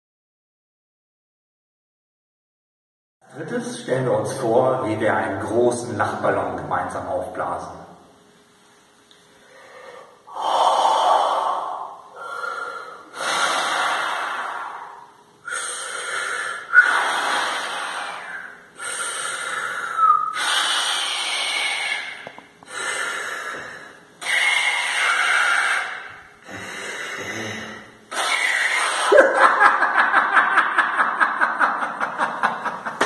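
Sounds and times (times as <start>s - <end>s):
man blowing hard through mouth: 10.3s - 29.4s.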